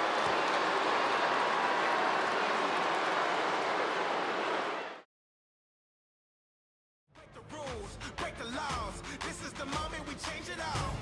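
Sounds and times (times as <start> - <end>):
arena crowd noise: 0.0 - 5.1.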